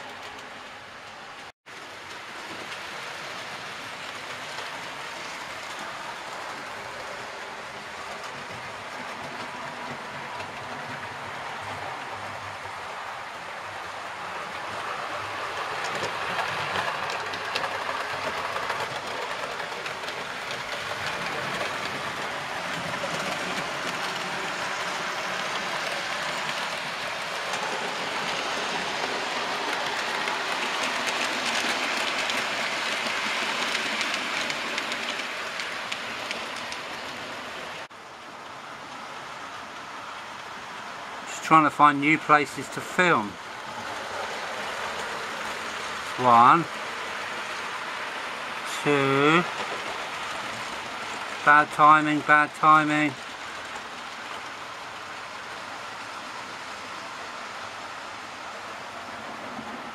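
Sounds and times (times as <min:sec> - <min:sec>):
model train wheels rattling on rails: 0:14.3 - 0:37.9, 0:41.3 - 0:57.6.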